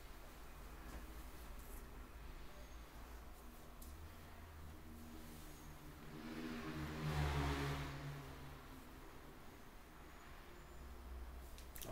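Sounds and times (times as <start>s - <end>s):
motor vehicle passing by: 0.6s - 11.9s.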